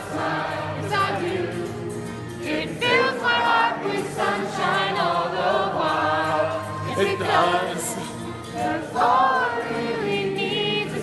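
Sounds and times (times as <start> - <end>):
crowd singing along with music: 0.0 - 11.0.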